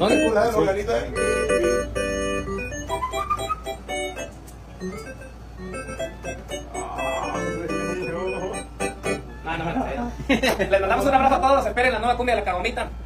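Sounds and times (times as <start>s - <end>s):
electronic keyboard notes: 0.0s - 10.2s.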